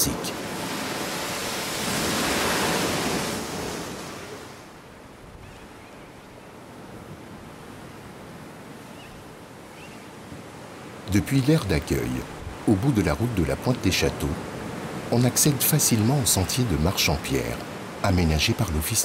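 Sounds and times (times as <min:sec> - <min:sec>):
surf breaking on rocky shore: 0:00.0 - 0:04.7.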